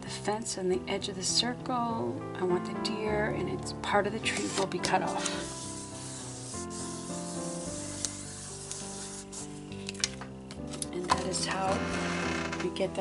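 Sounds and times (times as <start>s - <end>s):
fingers rubbing paper: 4.3s - 9.6s.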